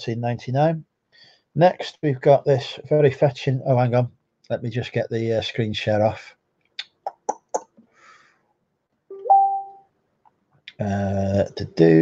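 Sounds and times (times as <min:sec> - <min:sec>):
two-note electronic chime: 0:09.1 - 0:09.8.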